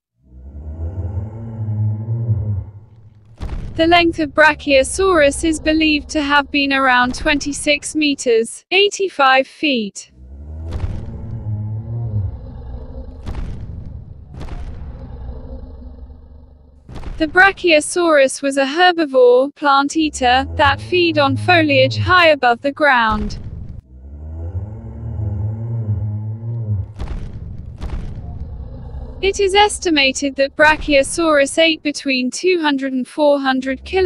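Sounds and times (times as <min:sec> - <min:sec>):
low dinosaur call: 0:00.2 - 0:03.2, 0:10.1 - 0:13.3, 0:23.9 - 0:27.0
deep dinosaur call: 0:00.2 - 0:08.2, 0:10.1 - 0:16.9, 0:20.0 - 0:22.8, 0:23.8 - 0:27.2, 0:27.8 - 0:31.9
low rumble: 0:00.3 - 0:08.2, 0:10.1 - 0:17.7, 0:20.0 - 0:32.1.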